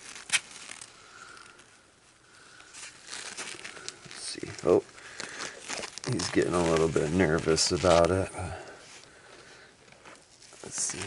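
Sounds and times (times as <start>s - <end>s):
paper napkin crinkling: 0.0s - 11.0s.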